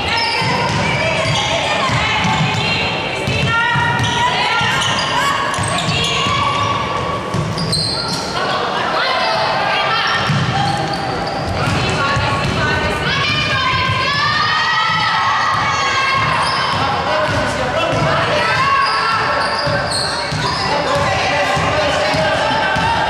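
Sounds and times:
players calling out: 0:00.0 - 0:23.0.

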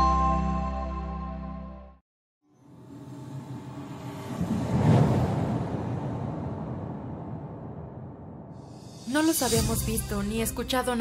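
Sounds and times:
deep rumbling rush: 0:03.6 - 0:08.6.

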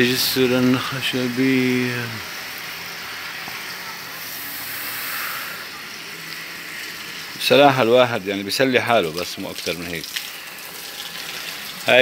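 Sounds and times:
steady hissing noise: 0:00.0 - 0:12.0.

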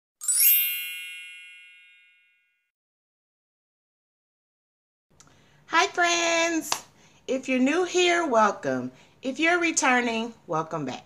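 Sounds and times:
bell-like chime: 0:00.2 - 0:02.7.

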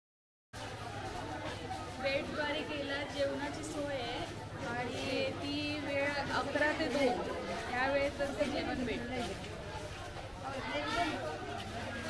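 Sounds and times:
people talking indistinctly: 0:00.6 - 0:12.0.

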